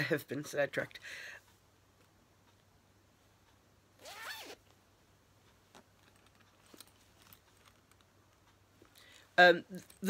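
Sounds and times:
zipper pulled: 0:04.0 - 0:04.7
handling clicks and rustles: 0:05.4 - 0:10.0.

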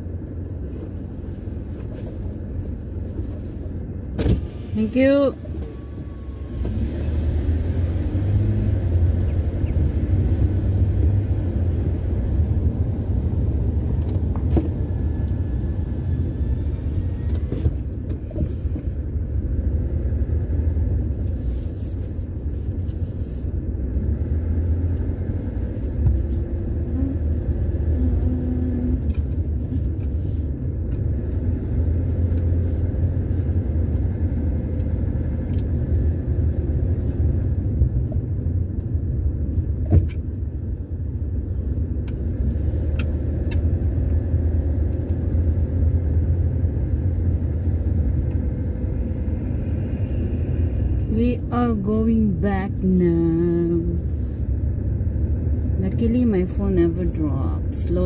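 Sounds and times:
car engine rumble from cabin: 0:00.0 - 0:58.0.

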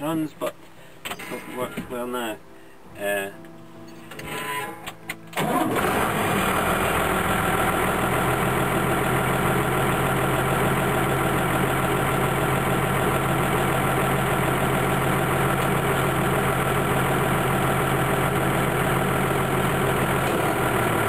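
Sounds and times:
tractor engine starting and idling: 0:05.3 - 0:21.0.

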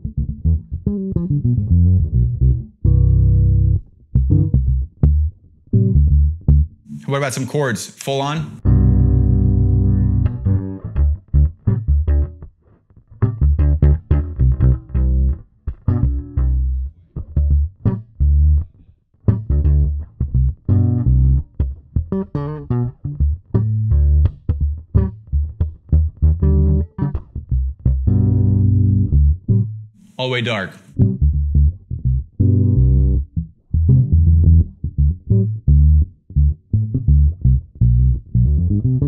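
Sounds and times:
electric bass plucked notes: 0:00.0 - 0:07.1, 0:08.6 - 0:29.9, 0:31.0 - 0:39.0.

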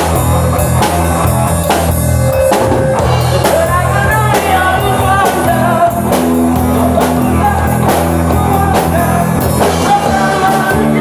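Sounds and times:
bass line: 0:00.0 - 0:11.0
rock band playing live: 0:00.0 - 0:11.0.

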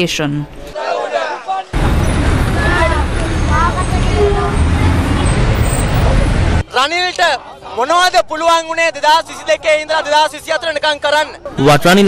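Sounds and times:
voices talking: 0:00.6 - 0:12.0
traffic rumble: 0:01.7 - 0:06.7.

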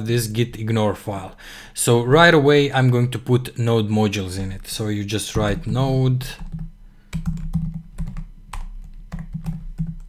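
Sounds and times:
keyboard typing: 0:05.4 - 0:10.0.

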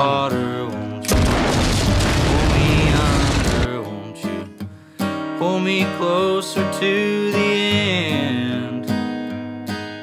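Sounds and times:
large explosion roar: 0:01.1 - 0:03.7.

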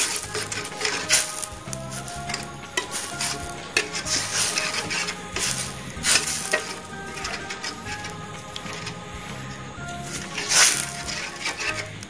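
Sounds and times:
curry sizzling gently: 0:00.0 - 0:12.0
ladle scraping a metal pan: 0:00.0 - 0:12.0.

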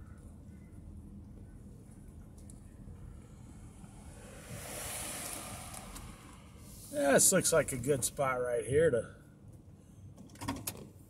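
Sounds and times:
rushing noise: 0:03.1 - 0:08.4.

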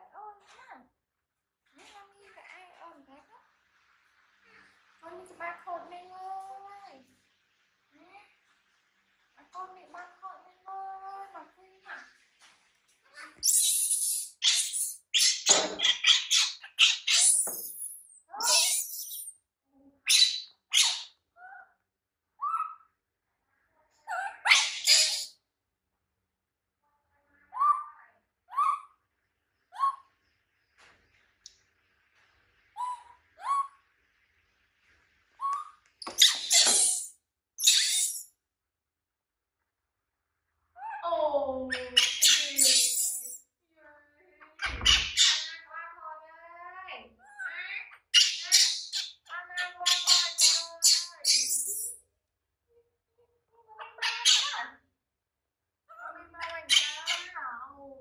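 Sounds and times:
baby monkey shrieking: 0:13.4 - 0:19.4, 0:20.1 - 0:21.7, 0:22.4 - 0:22.8, 0:24.1 - 0:25.4, 0:27.5 - 0:27.9, 0:28.5 - 0:29.0, 0:29.7 - 0:30.1, 0:32.8 - 0:33.8, 0:35.4 - 0:38.3, 0:41.7 - 0:43.4, 0:44.6 - 0:45.7, 0:47.2 - 0:52.0, 0:53.8 - 0:54.6, 0:56.6 - 0:57.4.

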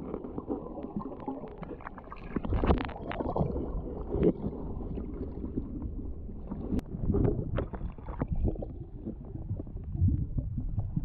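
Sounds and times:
underwater rumble of moving water: 0:00.0 - 0:11.0.

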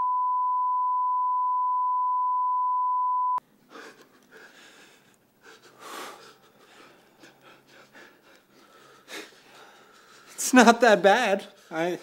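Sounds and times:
breathing: 0:03.7 - 0:10.4.

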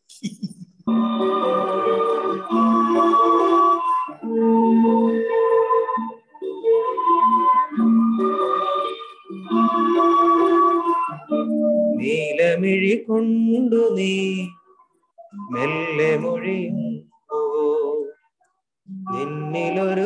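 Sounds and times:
slow instrumental melody: 0:00.6 - 0:18.1.

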